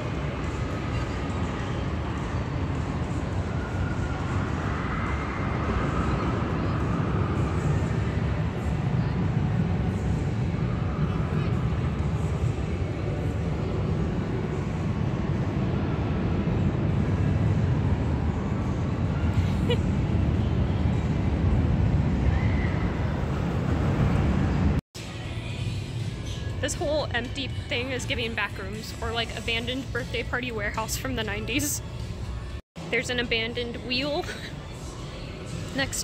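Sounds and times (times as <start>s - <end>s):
low rumble of amusement park: 0.0s - 36.0s.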